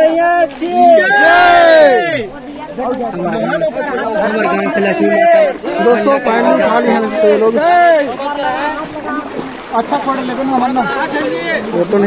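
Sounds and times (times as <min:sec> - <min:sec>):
crowd voices talking: 0:00.0 - 0:12.0.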